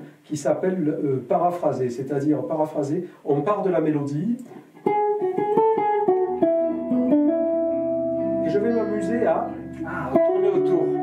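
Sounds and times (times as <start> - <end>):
electric guitar melody: 4.4 - 11.0.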